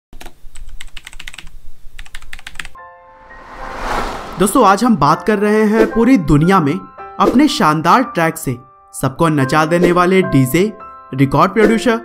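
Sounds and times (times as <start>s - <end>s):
whoosh: 3.1s - 5.3s.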